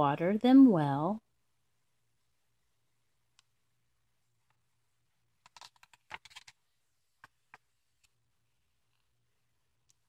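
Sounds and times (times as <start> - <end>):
paper page turning: 5.4 - 6.6.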